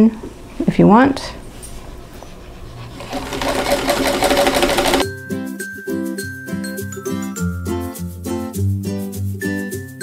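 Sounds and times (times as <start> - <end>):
electric sewing machine running: 3.0 - 5.0
background music: 3.4 - 10.0.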